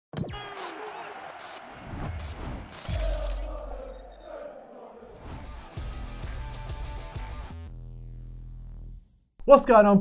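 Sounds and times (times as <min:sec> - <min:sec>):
glass shattering crash: 0:02.8 - 0:04.3.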